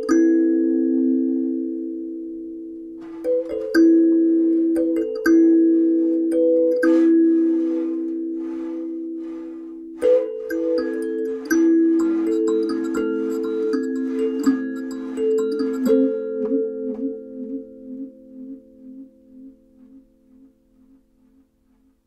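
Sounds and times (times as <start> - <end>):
kalimba notes plucked and ringing: 0.0 - 19.6.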